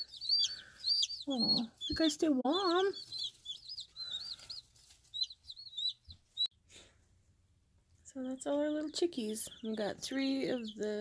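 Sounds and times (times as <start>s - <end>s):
chicks peeping: 0.0s - 6.5s, 8.2s - 11.0s.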